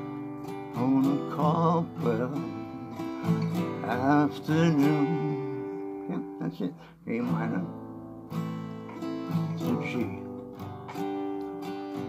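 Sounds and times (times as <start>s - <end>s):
acoustic guitar strums: 0.0s - 12.0s.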